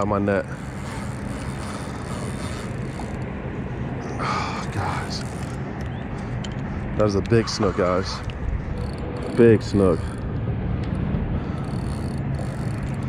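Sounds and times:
low engine hum: 0:00.0 - 0:13.0
rushing wind and water: 0:00.0 - 0:13.0.

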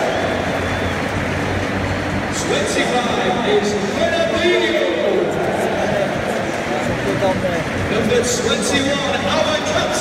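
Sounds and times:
stadium crowd cheering: 0:00.0 - 0:10.0
public address announcement: 0:02.2 - 0:10.0.

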